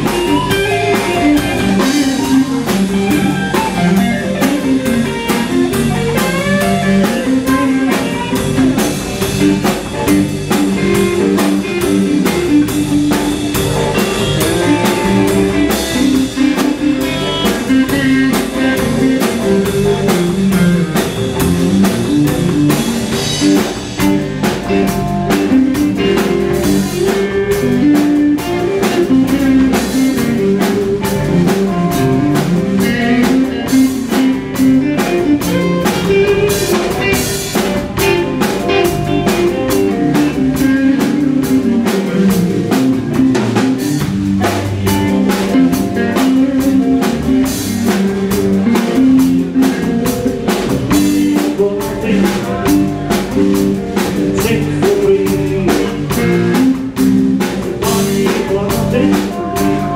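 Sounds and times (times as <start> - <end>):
drum kit with cymbal strokes: 0.0 - 59.9
electric guitars: 0.0 - 59.9
guitar lead with bent notes: 0.0 - 59.9.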